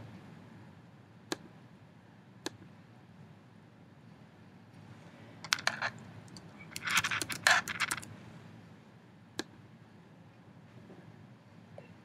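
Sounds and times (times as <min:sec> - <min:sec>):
computer keyboard typing: 0:05.5 - 0:08.1.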